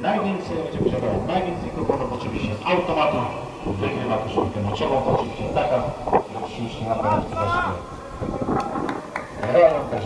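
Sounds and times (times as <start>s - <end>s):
man talking: 0.0s - 8.0s, 9.4s - 10.0s
open-air background noise: 0.0s - 10.0s.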